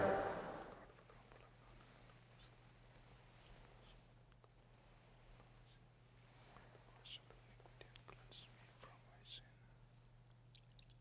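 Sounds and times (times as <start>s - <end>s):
person whispering: 0.0s - 2.5s, 6.7s - 9.7s
steady low hum: 0.0s - 10.5s.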